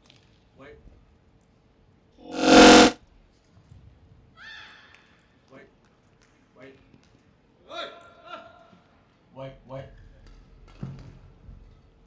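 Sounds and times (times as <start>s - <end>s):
synthesizer music burst: 2.2s - 3.0s.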